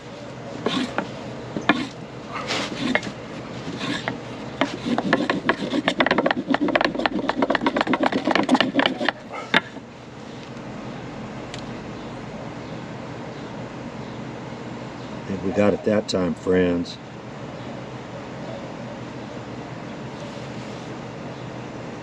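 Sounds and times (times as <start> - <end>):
wooden board rubbing on cotton roll: 0.5 - 9.2.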